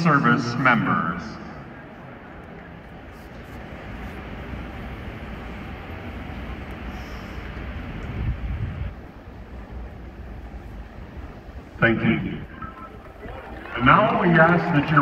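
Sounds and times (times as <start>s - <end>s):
large stadium crowd noise: 0.0s - 15.0s.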